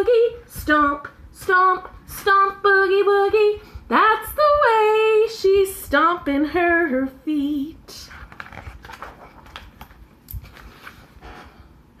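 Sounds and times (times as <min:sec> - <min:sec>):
book page turning: 0:08.1 - 0:11.5.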